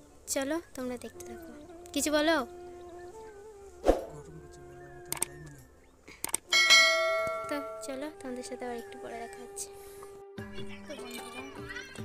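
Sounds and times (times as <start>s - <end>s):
sharp clicks: 5.1s - 5.6s, 6.2s - 6.5s
bright bell chime: 6.5s - 8.1s.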